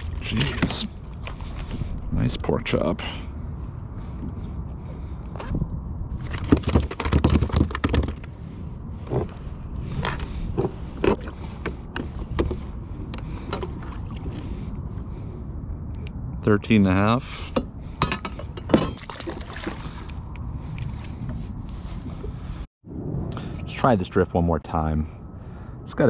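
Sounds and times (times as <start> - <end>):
wind and water rumble: 0.0 - 26.0.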